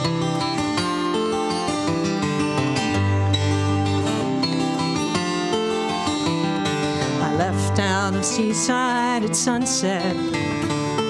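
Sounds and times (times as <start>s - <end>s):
acoustic guitar playing: 0.0s - 11.0s.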